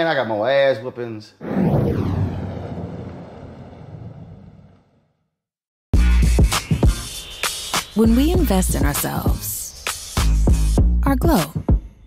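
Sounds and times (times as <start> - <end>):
whoosh with falling sweep: 1.4 - 4.8.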